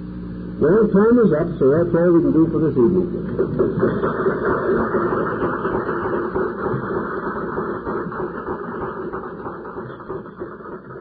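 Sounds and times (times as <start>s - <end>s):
audience applauding: 3.3s - 11.0s.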